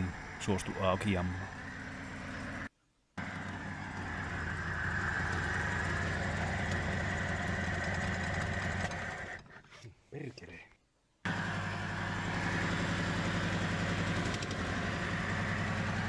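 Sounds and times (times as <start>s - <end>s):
car engine running: 0.0s - 9.4s, 11.3s - 16.0s.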